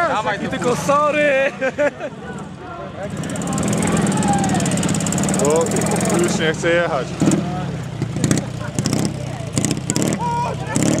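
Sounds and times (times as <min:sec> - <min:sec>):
onlookers talking: 0:00.0 - 0:11.0
motorcycle engine running: 0:03.0 - 0:11.0.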